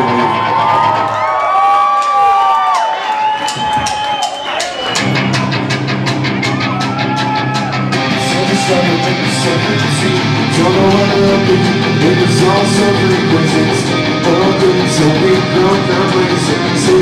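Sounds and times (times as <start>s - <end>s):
live rock band playing: 3.5s - 17.0s
person singing: 8.0s - 17.0s.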